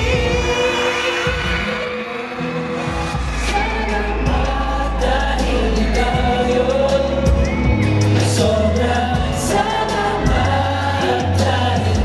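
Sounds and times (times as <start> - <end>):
men singing in harmony: 0.0 - 12.0
backing track with bass and cymbals: 2.4 - 12.0.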